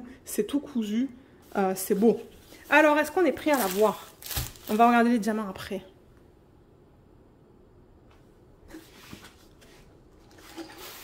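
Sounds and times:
canvas and plastic film crinkling: 0:02.0 - 0:05.1.

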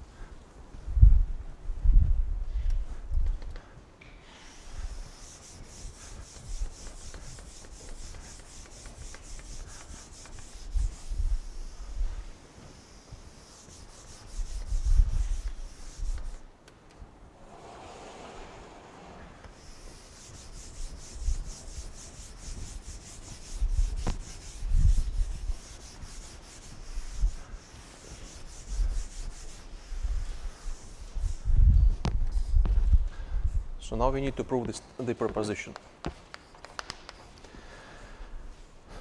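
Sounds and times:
cloth wiping chalkboard: 0:04.3 - 0:16.5, 0:17.3 - 0:31.6
dull rushing sound: 0:17.2 - 0:20.2.

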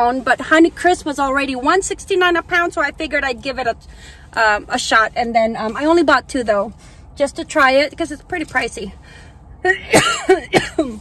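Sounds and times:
woman coughing: 0:09.7 - 0:11.0.

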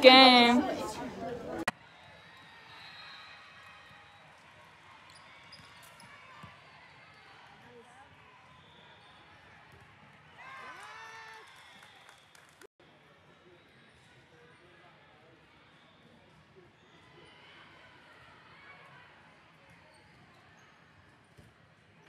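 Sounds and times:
players calling out: 0:00.0 - 0:01.7.

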